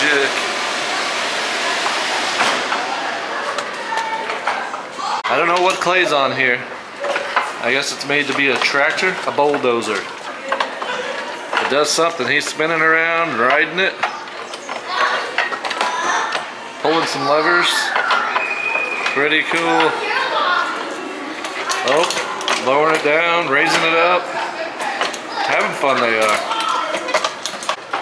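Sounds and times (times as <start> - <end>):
air blower rushing: 0.0 - 5.2
background chatter: 0.0 - 28.0
faint voices: 0.0 - 28.0.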